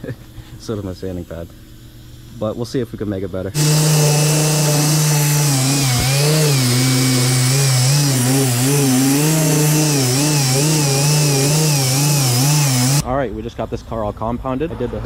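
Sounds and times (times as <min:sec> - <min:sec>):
polisher motor hum: 0:03.6 - 0:13.0.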